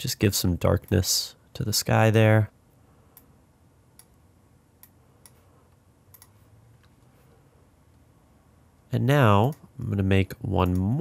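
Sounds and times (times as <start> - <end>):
computer mouse clicks: 3.9 - 4.2, 4.8 - 7.1.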